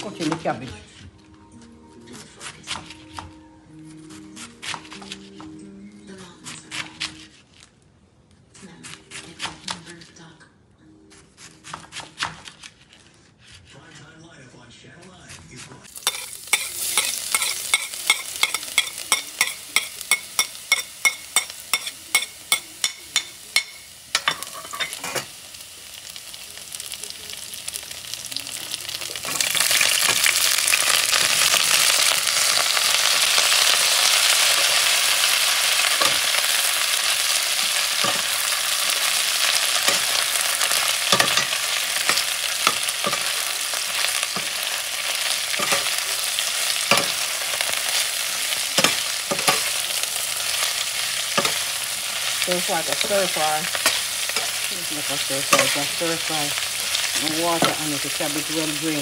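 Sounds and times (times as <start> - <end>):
vegetables sizzling in hot oil: 15.9 - 59.0.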